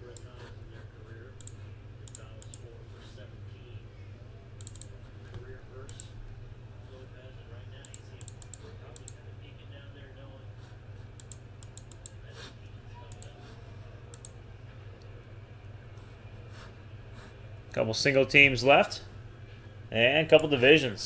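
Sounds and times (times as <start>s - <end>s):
low steady hum: 0.0s - 21.0s
mouse clicking: 1.4s - 2.7s, 4.6s - 5.0s, 7.8s - 9.2s, 11.2s - 12.2s, 13.1s - 13.4s, 14.1s - 14.4s
keyboard typing: 4.6s - 5.0s, 7.8s - 9.2s, 11.2s - 12.2s.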